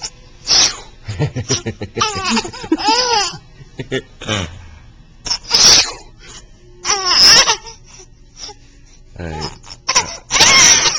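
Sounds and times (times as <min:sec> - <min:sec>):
baby laughing and squealing: 0:05.3 - 0:06.0, 0:06.8 - 0:07.8, 0:09.9 - 0:10.9.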